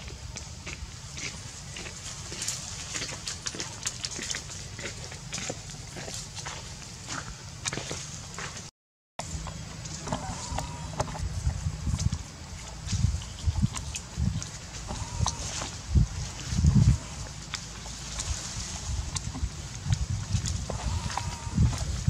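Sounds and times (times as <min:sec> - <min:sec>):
dry leaves and twigs crackling: 0:00.0 - 0:08.6, 0:09.2 - 0:22.0
low steady rumble: 0:00.0 - 0:22.0.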